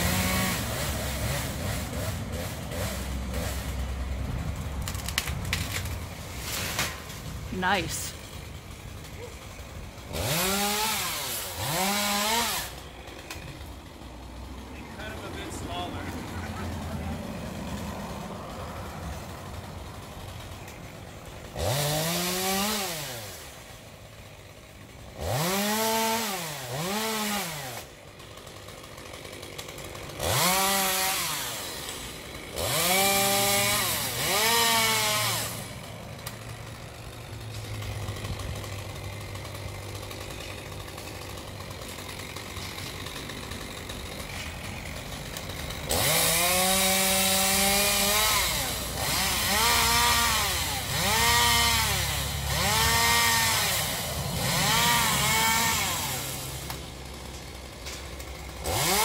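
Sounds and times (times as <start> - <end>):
chainsaw revving and idling: 0.0 - 59.0.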